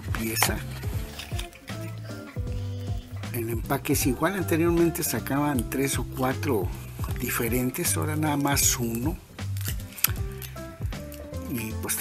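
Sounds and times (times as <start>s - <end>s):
held chords over bass line: 0.0s - 12.0s.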